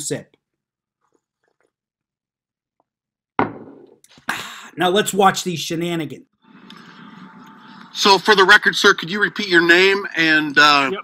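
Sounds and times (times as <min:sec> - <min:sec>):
ceramic mug set down: 0:03.4 - 0:04.0.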